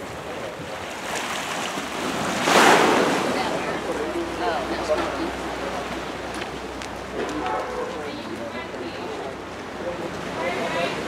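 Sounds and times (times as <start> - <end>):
wave splash: 0.0 - 11.0
waves washing against rocky shore: 0.0 - 11.0.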